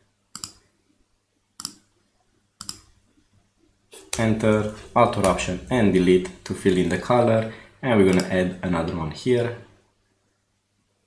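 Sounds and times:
computer mouse clicks: 0.3 - 0.6, 1.6 - 1.9, 2.6 - 2.9.

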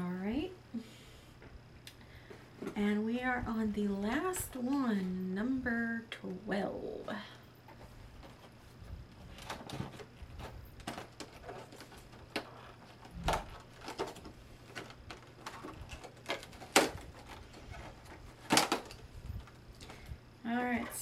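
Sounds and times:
plastic packaging clicks and crackles: 9.2 - 20.1.

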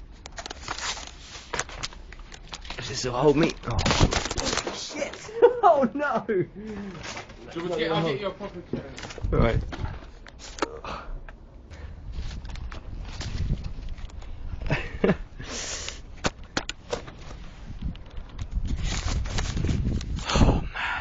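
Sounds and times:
rustling: 12.1 - 14.5, 15.8 - 20.2.

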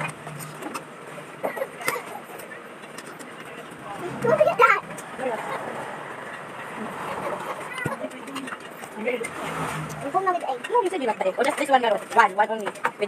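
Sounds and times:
steady background noise: 0.0 - 13.0
people's voices: 1.5 - 13.0.

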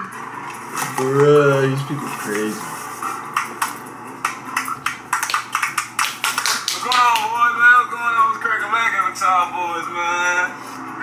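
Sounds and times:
sharp hand claps: 3.4 - 7.4.

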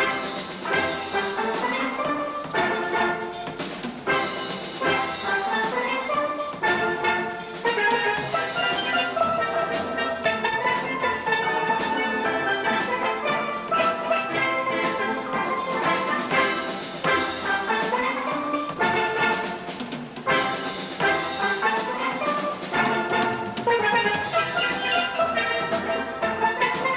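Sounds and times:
steel band playing: 0.0 - 26.9.

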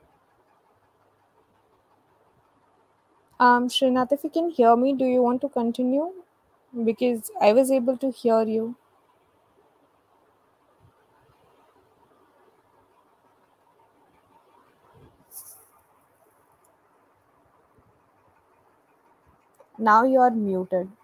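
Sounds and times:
person speaking: 19.6 - 21.0.

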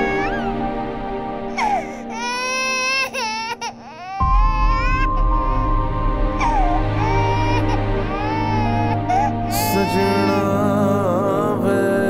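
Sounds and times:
infant crying: 0.0 - 0.5, 1.5 - 5.7, 6.4 - 10.7
soft background music: 0.0 - 12.0.

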